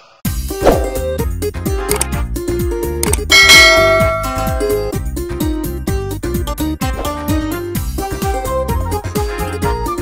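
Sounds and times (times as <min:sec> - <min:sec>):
bright bell chime: 0:03.3 - 0:05.0.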